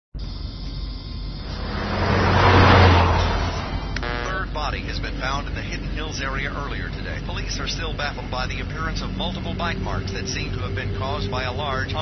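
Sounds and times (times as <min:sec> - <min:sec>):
car passing by: 0:01.4 - 0:04.4.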